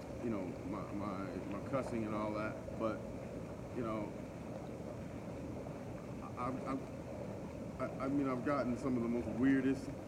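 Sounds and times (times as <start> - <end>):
hot tub jets churning water: 0.0 - 10.0.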